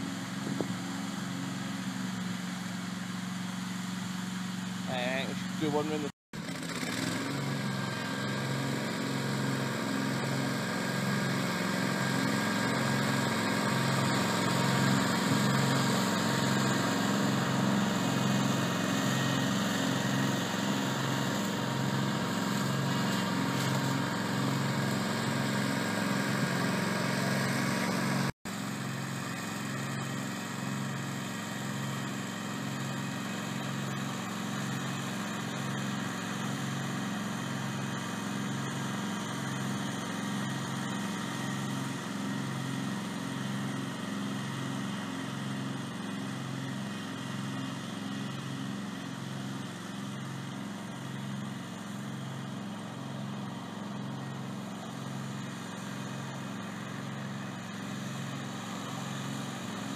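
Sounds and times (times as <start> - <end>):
mower engine running: 0.0 - 59.9.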